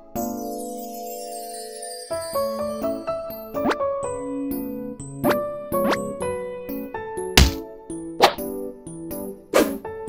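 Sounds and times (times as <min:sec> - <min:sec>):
light playful background music: 0:00.1 - 0:10.0.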